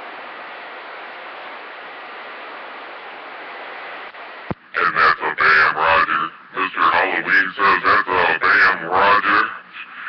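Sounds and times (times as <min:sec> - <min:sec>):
distorted voice over two-way radio: 0:04.8 - 0:10.0.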